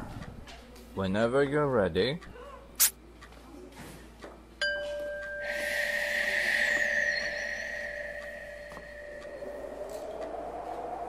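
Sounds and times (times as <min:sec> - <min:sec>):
ringing chime-like tone: 0:04.6 - 0:10.6
hiss: 0:05.4 - 0:09.5.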